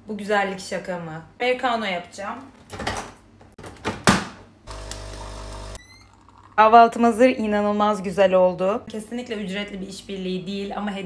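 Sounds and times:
coffee machine pump humming: 0:04.7 - 0:06.6.

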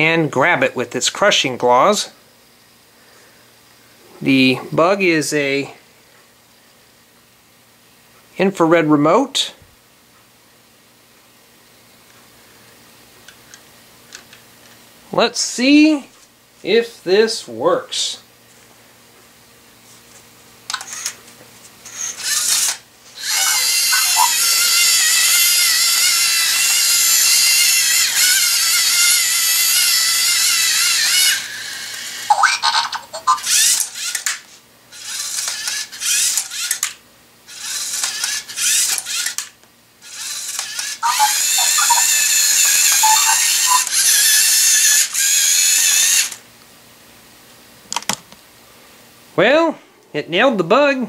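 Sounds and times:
servo motors whining: 0:21.9 - 0:32.3, 0:37.5 - 0:39.4, 0:40.0 - 0:46.4.

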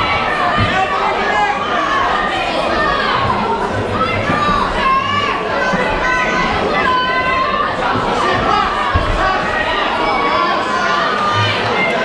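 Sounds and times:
spectators shouting: 0:00.0 - 0:12.0.

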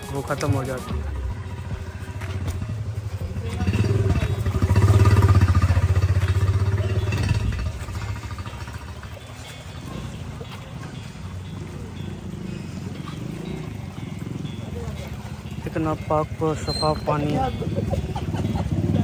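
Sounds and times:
small motorcycle engine passing: 0:00.0 - 0:10.2, 0:11.2 - 0:19.0.

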